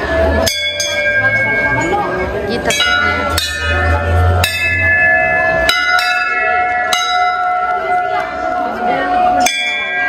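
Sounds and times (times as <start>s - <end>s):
brass temple bells ringing: 0.0s - 10.0s.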